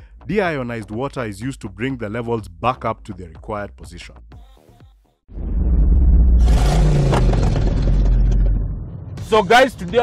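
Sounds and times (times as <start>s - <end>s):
car engine and road rumble: 5.5s - 10.0s.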